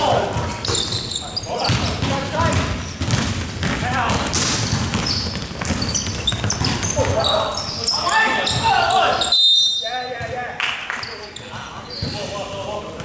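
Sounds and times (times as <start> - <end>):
sneakers squeaking: 0.0 - 13.0
basketball bouncing on hardwood: 1.6 - 7.2
players shouting: 6.8 - 9.4.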